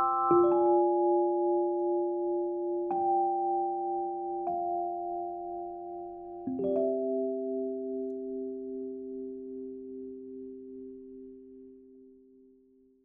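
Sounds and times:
bell-like music chord: 0.0s - 2.8s.

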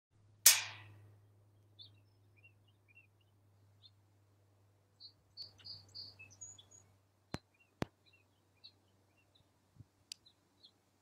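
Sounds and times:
bird chirp: 0.9s - 4.1s, 4.9s - 10.9s.

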